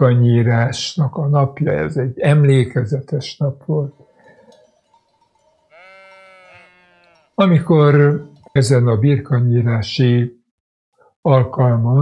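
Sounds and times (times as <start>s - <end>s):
sheep bleat: 5.7s - 7.4s.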